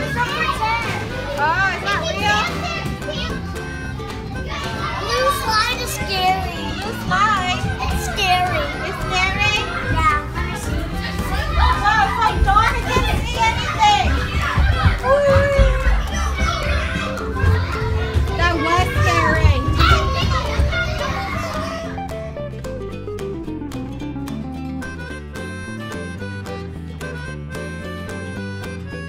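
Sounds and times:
children shouting and squealing: 0.0s - 22.4s
background music: 0.0s - 29.0s
thumps and rumbling in play tubes: 9.0s - 21.8s.

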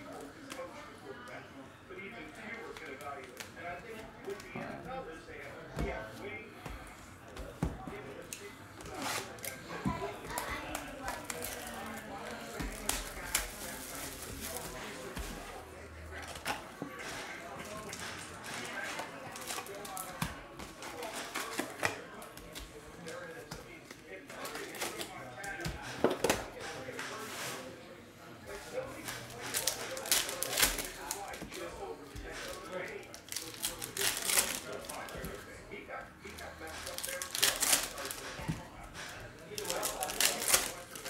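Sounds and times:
foil card packs crinkling: 10.3s - 15.4s, 29.0s - 35.4s, 36.3s - 38.4s, 39.5s - 41.0s.

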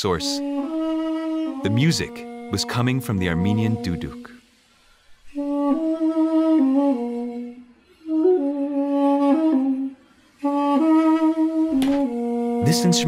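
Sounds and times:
double-reed pipe melody: 0.0s - 4.6s, 5.3s - 13.0s.

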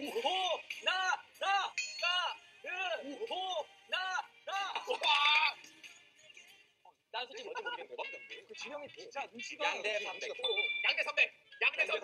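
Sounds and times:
faint music: 0.0s - 12.0s
high-pitched vocal cry: 4.5s - 5.7s.

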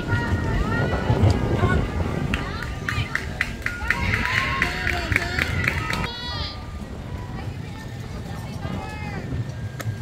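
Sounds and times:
rhythmic clapping: 2.3s - 6.1s.

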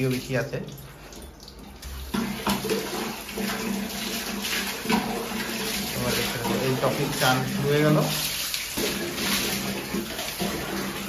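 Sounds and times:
water pouring over dog's coat: 0.0s - 11.0s
water splashing into bucket: 0.0s - 11.0s.

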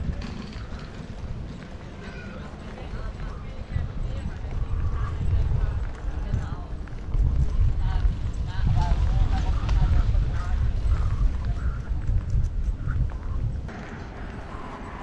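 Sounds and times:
footsteps on paving: 0.0s - 14.6s
faint voices of passers-by: 0.0s - 15.0s
wind rumbling on microphone: 0.0s - 15.0s.

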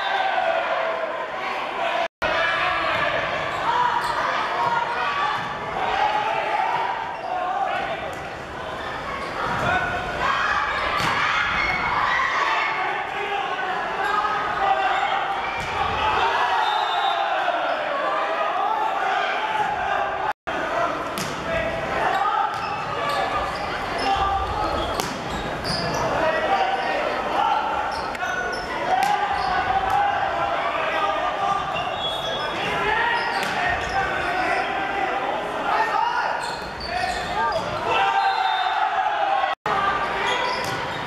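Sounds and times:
people shouting and chattering: 0.0s - 41.0s.

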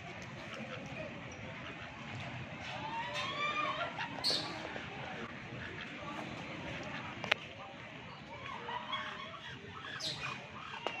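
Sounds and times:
distant voices: 0.0s - 11.0s
bird calls: 4.0s - 4.8s, 8.9s - 11.0s.

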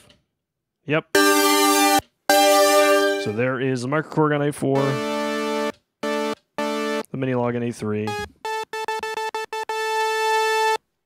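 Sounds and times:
buzzy synthesizer note: 1.2s - 3.5s, 4.8s - 7.1s, 8.1s - 10.8s.

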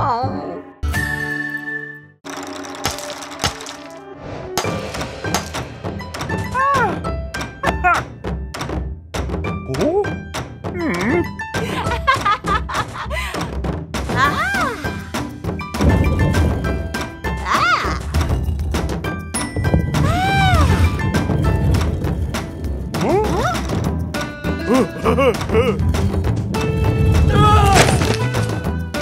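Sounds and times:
wordless cartoon voices: 6.5s - 7.0s, 7.6s - 8.1s, 9.6s - 11.8s, 14.1s - 15.0s, 17.4s - 18.9s, 22.9s - 26.3s
cartoon music: 24.5s - 26.1s.

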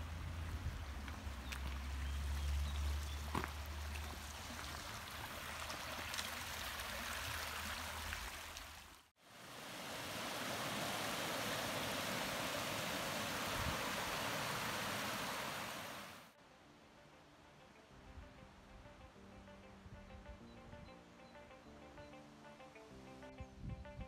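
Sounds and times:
stream rushing over rocks: 0.6s - 16.3s.

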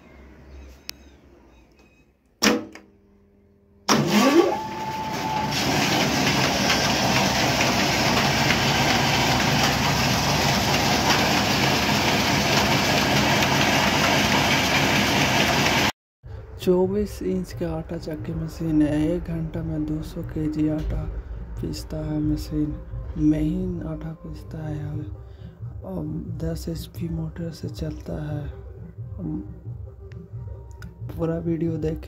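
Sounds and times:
electric motor whine rising: 3.9s - 15.9s
flour mill whirring: 3.9s - 15.9s.

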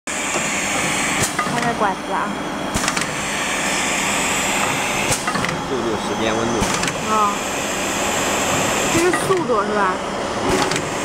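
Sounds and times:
filling machine whirring hum: 0.1s - 11.0s
man speaking: 5.6s - 6.7s.

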